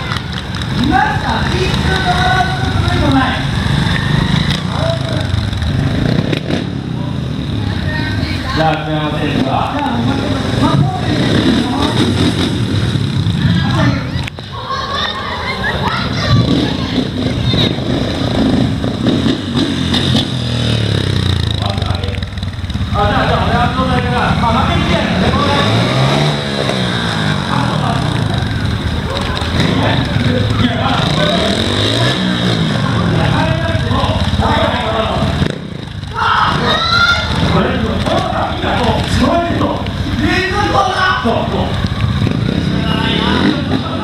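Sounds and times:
motorcycle engine revving: 0:00.0 - 0:14.6, 0:15.5 - 0:44.0
man talking over loudspeaker: 0:08.5 - 0:12.1, 0:22.9 - 0:25.9, 0:37.4 - 0:41.8.

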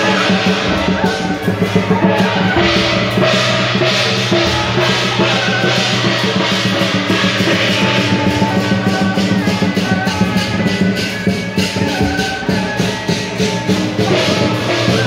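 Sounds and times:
sustained pitched tones: 0:00.0 - 0:14.7
cymbals crashing: 0:00.0 - 0:15.0
drums beating: 0:00.0 - 0:15.0.

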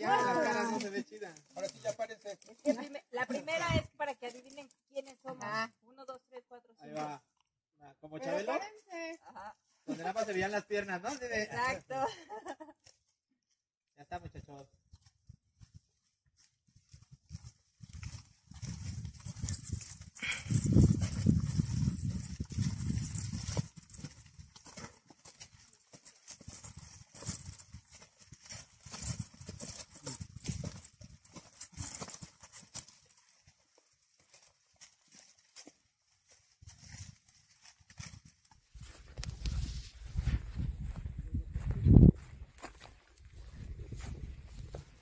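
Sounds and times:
footsteps crunching on gravel: 0:17.5 - 0:45.0.

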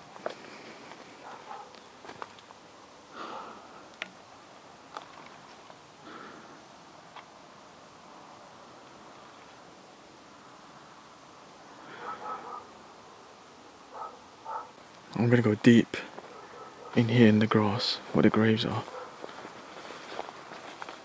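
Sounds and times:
rustling through long grass: 0:00.0 - 0:10.4, 0:17.9 - 0:21.0.

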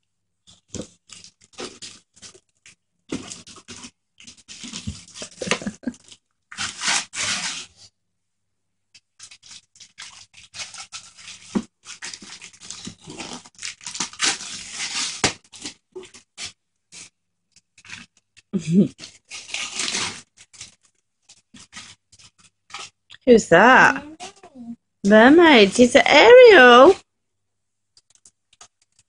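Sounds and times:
wrapping paper crinkling and tearing: 0:00.5 - 0:07.8, 0:09.0 - 0:23.0, 0:28.0 - 0:29.0.

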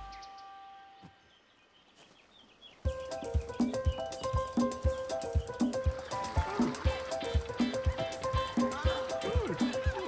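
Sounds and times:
faint bird chirps: 0:00.0 - 0:06.2
rhythmic percussive tune: 0:02.9 - 0:10.0.

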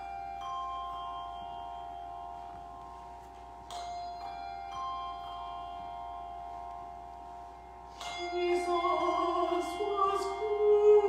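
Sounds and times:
handbells ringing: 0:00.0 - 0:11.0.

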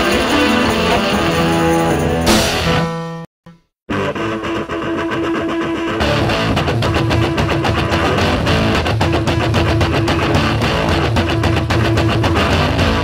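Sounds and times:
punk band with drums and bass: 0:00.0 - 0:03.0, 0:03.9 - 0:13.0
electric guitar: 0:00.0 - 0:03.2, 0:03.9 - 0:13.0.

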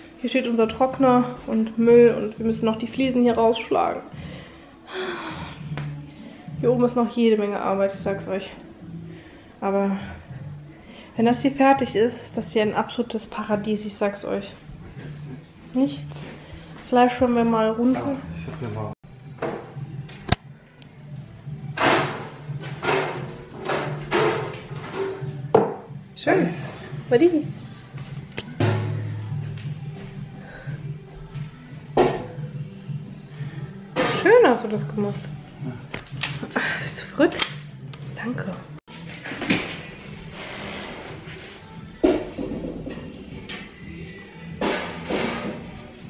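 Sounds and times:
background music with low drone: 0:00.0 - 0:46.0
person exhaling: 0:04.4 - 0:05.7.

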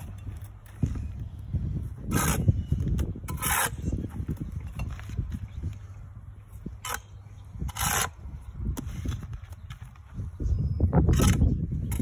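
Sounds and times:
trowel scraping mortar: 0:02.0 - 0:04.5, 0:07.6 - 0:08.2.

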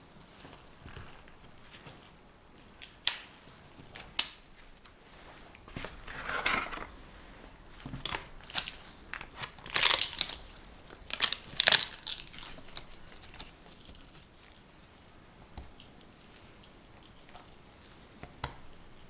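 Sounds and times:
parchment paper crinkling: 0:05.6 - 0:19.0.

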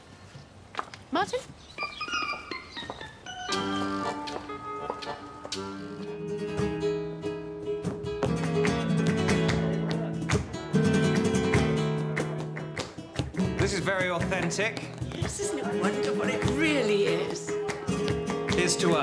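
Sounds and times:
flamenco acoustic guitar: 0:03.5 - 0:19.0.

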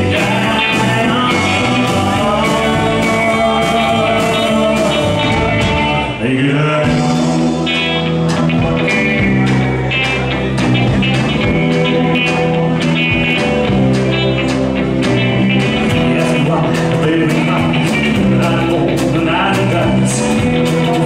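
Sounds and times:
rockabilly band playing: 0:00.0 - 0:21.0.

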